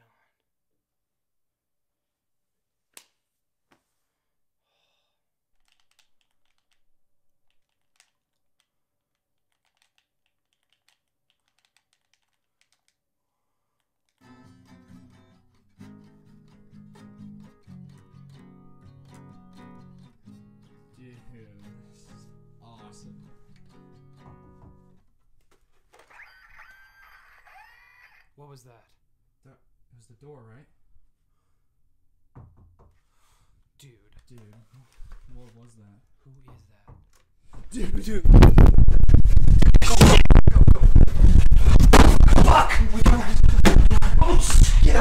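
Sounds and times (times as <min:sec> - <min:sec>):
game controller buttons clicking: 0:05.6 - 0:06.8, 0:09.5 - 0:13.0
acoustic guitar playing: 0:14.2 - 0:25.0.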